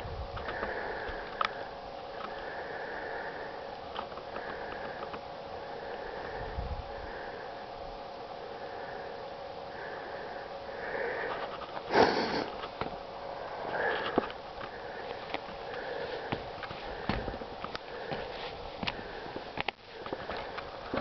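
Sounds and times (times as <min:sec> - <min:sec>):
person breathing and sniffing: 0:00.4 - 0:07.7, 0:08.5 - 0:21.0
footsteps on snow and wood: 0:13.7 - 0:21.0.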